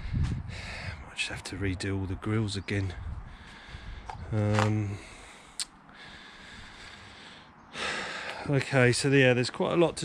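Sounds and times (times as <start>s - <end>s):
person drawing quick breath: 5.0s - 8.4s.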